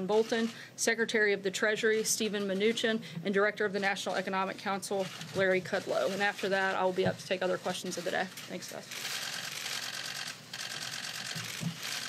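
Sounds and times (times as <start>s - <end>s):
camera shutters clicking rapidly: 8.0s - 12.0s.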